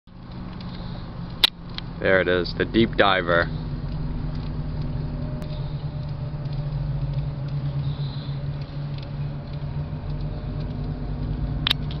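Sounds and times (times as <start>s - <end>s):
motor humming: 0.1s - 12.0s
faint clicks: 3.8s - 12.0s.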